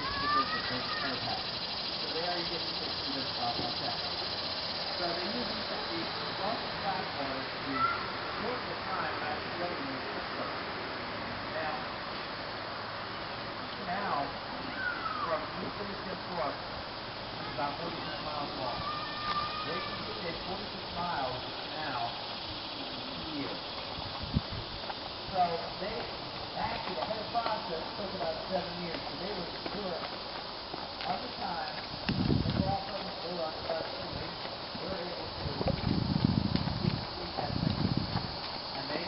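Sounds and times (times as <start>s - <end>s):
hooves on gravel: 0.0s - 7.4s, 22.4s - 39.0s
indistinct voices: 0.0s - 10.6s, 13.6s - 39.0s.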